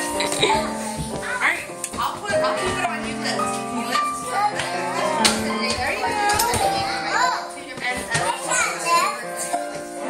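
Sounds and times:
music playing: 0:00.0 - 0:10.0
girls chattering and calling out: 0:00.6 - 0:09.7.

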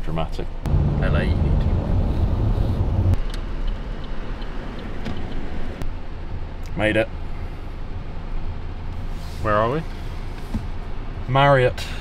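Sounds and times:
road noise: 0:00.0 - 0:12.0
car engine hum: 0:00.6 - 0:12.0.

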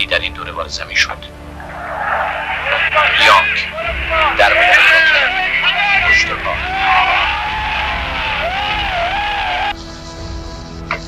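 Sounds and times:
background music: 0:00.0 - 0:11.0
raised excited voices: 0:01.6 - 0:09.8.

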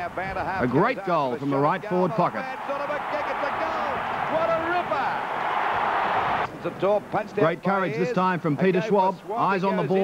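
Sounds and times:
stadium crowd cheering: 0:01.3 - 0:06.5.

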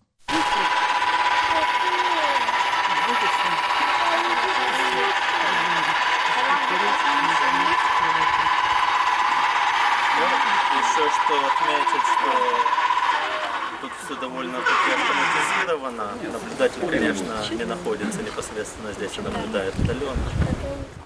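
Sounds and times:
telescope motor humming: 0:00.2 - 0:15.8
children chattering: 0:00.3 - 0:15.7.

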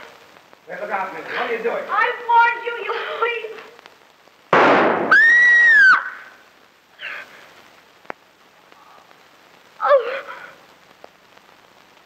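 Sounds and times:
gunshot: 0:04.5 - 0:05.4
woman screaming: 0:05.1 - 0:06.4, 0:09.8 - 0:10.3.

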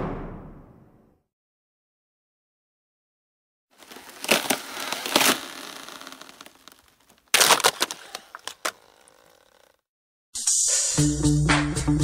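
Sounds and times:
ice cracking: 0:03.8 - 0:09.7.

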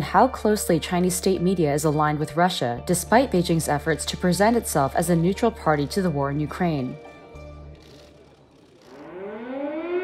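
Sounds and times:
air-raid siren winding up: 0:07.8 - 0:10.0.

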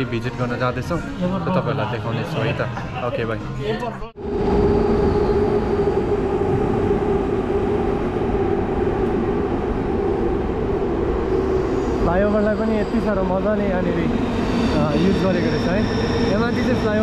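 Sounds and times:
train rumbling on viaduct: 0:04.2 - 0:17.0.

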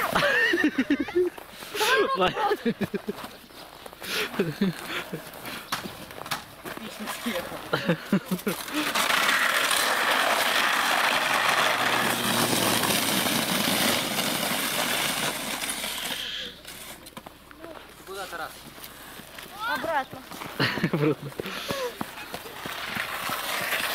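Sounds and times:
sled scraping down icy slide: 0:00.0 - 0:02.1, 0:06.8 - 0:17.2, 0:20.6 - 0:23.9
footsteps crunching in snow: 0:02.8 - 0:08.9, 0:16.7 - 0:23.9.

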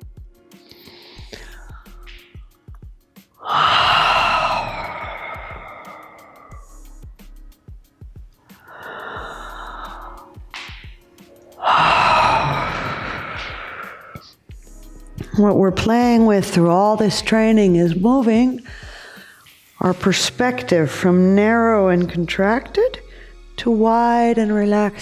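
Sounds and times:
woman breathing through open mouth: 0:00.5 - 0:02.7, 0:03.4 - 0:07.2, 0:08.4 - 0:14.5, 0:18.6 - 0:19.8.

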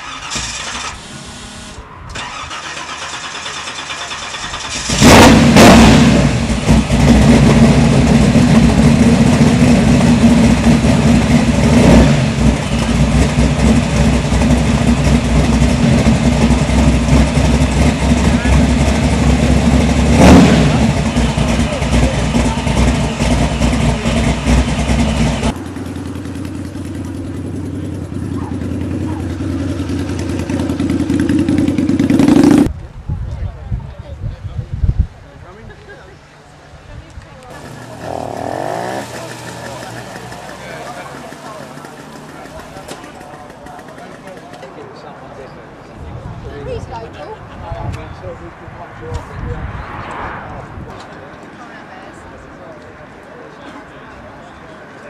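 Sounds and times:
car engine running and revving: 0:04.9 - 0:32.7, 0:37.6 - 0:43.2.

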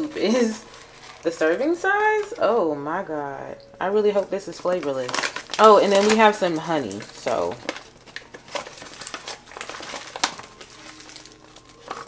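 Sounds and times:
plastic pouch crinkling: 0:00.0 - 0:02.6, 0:03.6 - 0:12.0.

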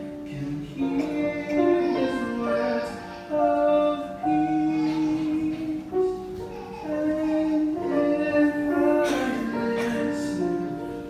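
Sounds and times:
light instrumental accompaniment: 0:00.0 - 0:11.0
men singing through microphones: 0:00.3 - 0:06.1, 0:07.0 - 0:10.9.

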